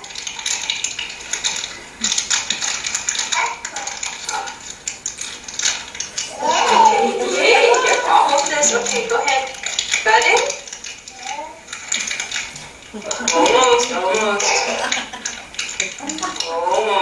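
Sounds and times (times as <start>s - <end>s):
toddler and woman talking: 6.3s - 11.7s, 13.1s - 14.9s, 15.8s - 17.0s.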